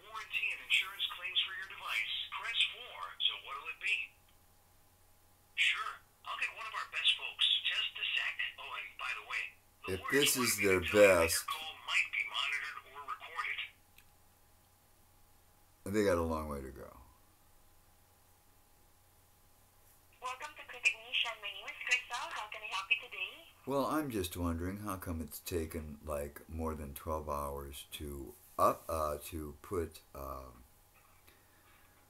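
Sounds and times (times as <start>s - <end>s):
voice through phone speaker: 0.0s - 4.1s, 5.6s - 13.8s, 20.2s - 24.0s.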